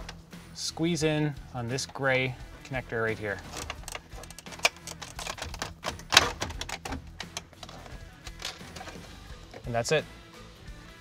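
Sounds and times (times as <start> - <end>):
plastic clicks and knocks: 3.5 - 9.6.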